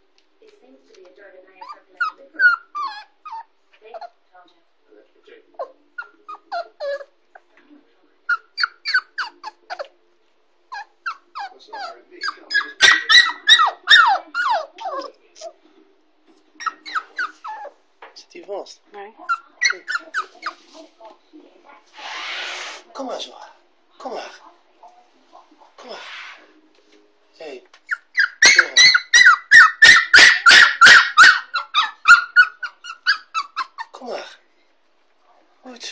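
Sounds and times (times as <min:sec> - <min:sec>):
puppy whining: 0:01.6 - 0:04.2, 0:05.5 - 0:07.6, 0:08.3 - 0:10.0, 0:10.7 - 0:15.6, 0:16.3 - 0:17.8, 0:19.2 - 0:20.7, 0:27.8 - 0:34.2.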